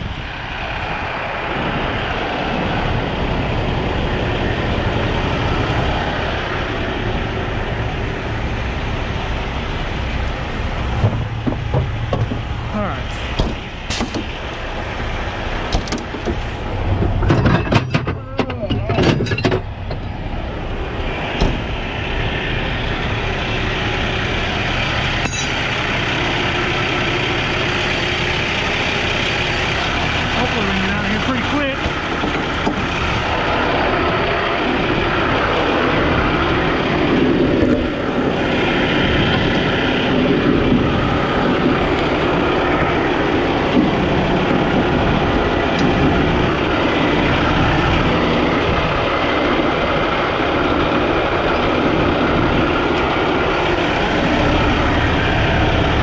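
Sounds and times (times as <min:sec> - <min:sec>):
diesel truck engines idling: 0:00.0 - 0:56.0
knocking and clattering: 0:11.0 - 0:12.5, 0:17.0 - 0:20.2.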